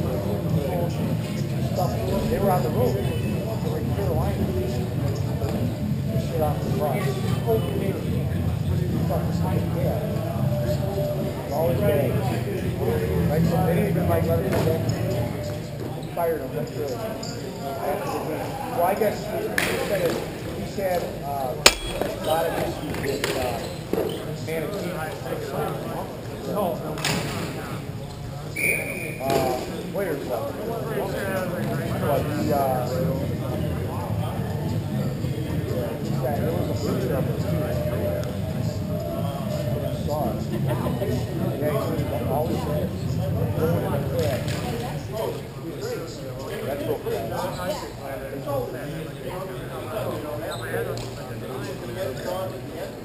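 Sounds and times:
hockey sticks knocking: 21.7 - 22.2.

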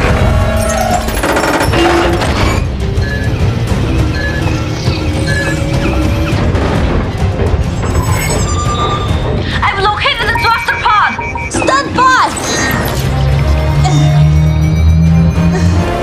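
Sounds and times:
dramatic music score: 0.0 - 16.0
short high beeps: 10.0 - 12.8.

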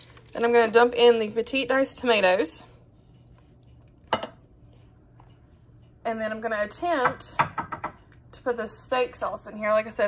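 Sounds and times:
kitchenware clink: 4.1 - 4.4.

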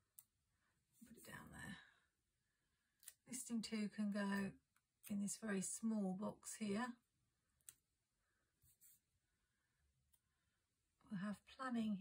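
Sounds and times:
woman whispering: 1.0 - 2.0.

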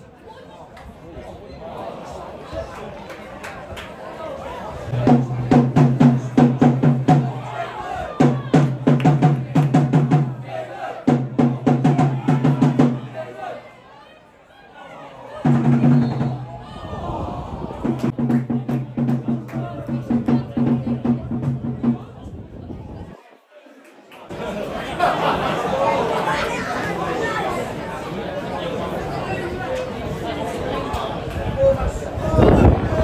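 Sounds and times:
voices: 0.0 - 33.0
fast drumming: 4.9 - 7.6, 8.2 - 10.4, 11.1 - 13.2, 15.4 - 16.5, 17.8 - 22.2.

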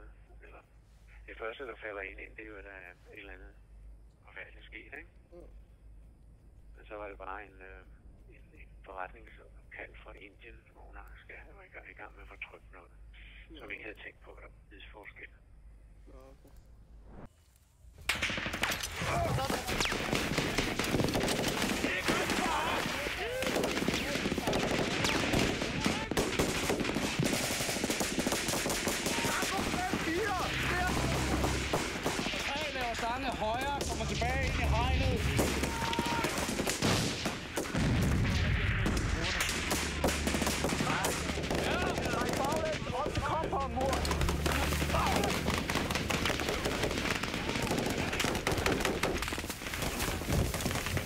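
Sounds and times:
automatic gunfire: 18.1 - 34.0, 35.2 - 43.4, 44.0 - 51.0.

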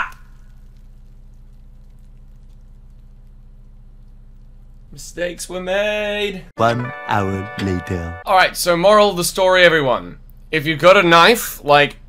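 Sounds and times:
low electrical hum: 0.0 - 7.3, 8.1 - 12.0.

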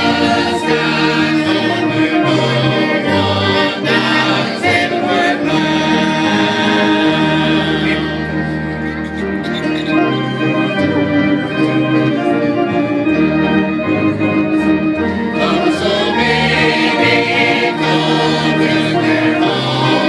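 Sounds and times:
choir singing a hymn: 0.0 - 20.0
keyboard accompaniment: 0.0 - 20.0.

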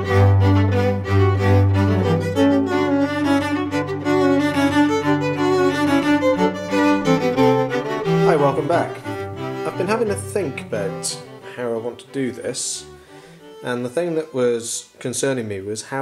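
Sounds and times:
bowed strings music: 0.0 - 16.0.

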